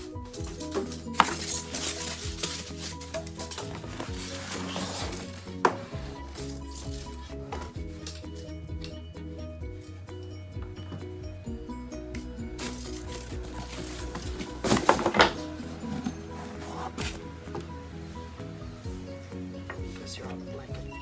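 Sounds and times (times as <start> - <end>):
plastic wrapping rustling: 0.0 - 8.5, 12.5 - 17.3
background music with bass line: 0.0 - 21.0.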